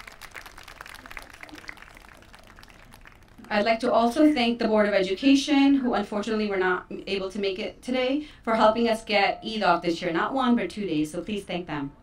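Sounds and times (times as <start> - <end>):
light scattered applause: 0.0 - 3.6.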